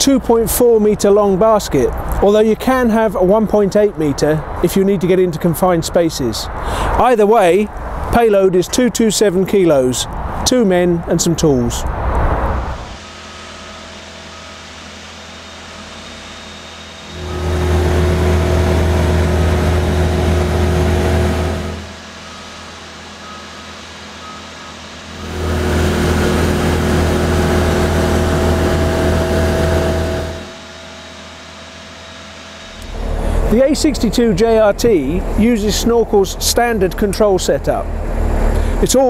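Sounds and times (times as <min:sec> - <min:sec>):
diesel engine idling and revving: 0:17.0 - 0:39.0.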